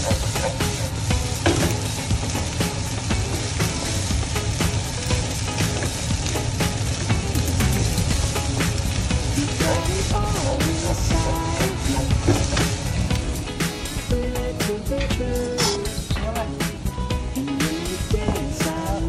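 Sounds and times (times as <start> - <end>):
fried rice sizzling in pan: 0.0 - 19.0.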